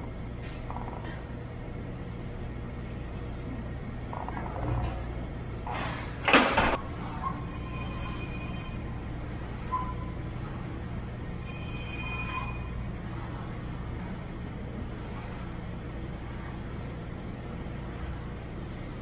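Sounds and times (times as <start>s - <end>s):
ventilation hum: 0.0s - 19.0s.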